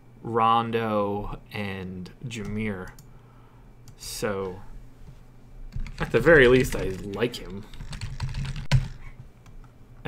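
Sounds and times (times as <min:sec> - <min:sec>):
typing on computer keyboard: 0:05.7 - 0:09.0.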